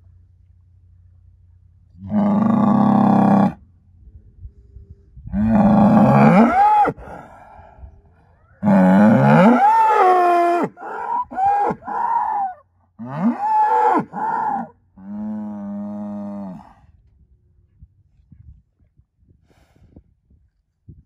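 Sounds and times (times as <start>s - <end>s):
bull bellowing: 2.0s - 3.6s, 5.3s - 7.4s, 8.6s - 16.7s.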